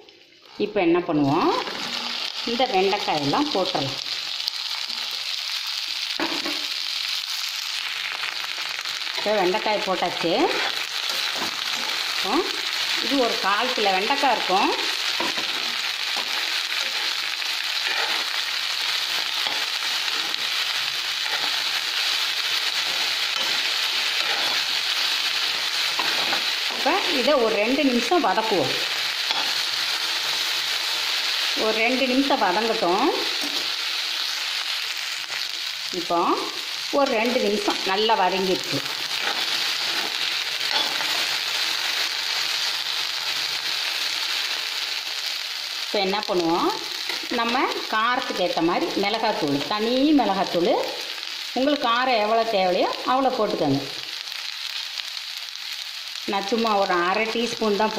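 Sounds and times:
okra sizzling in hot oil: 0.0s - 57.9s.

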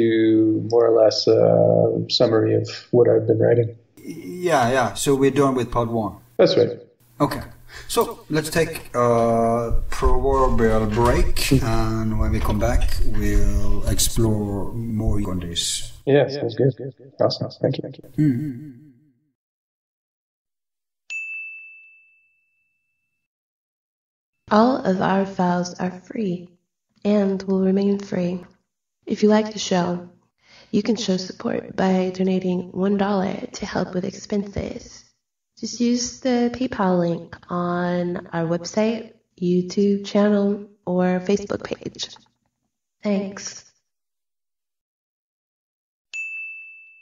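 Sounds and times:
high bell-like chime: 21.1s - 23.2s, 46.1s - 47.0s.

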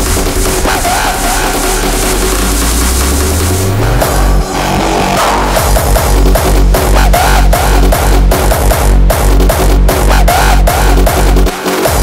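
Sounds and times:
electronic dance music: 0.0s - 12.0s
pounding kick drum: 0.0s - 12.0s
rising bass sweep: 0.0s - 12.0s.

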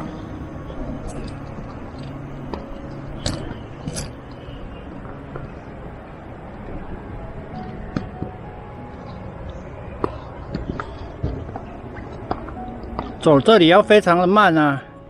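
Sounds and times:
steady low rushing noise: 0.0s - 15.0s.

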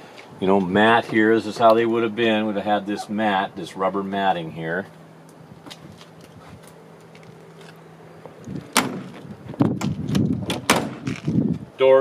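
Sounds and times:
car door shutting: 8.6s - 11.4s.

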